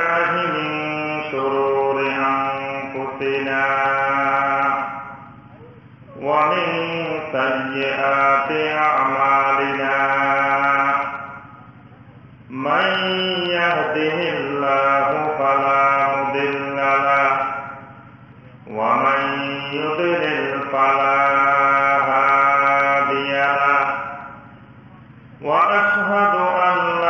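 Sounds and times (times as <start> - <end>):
man chanting unaccompanied: 0.0 - 27.0.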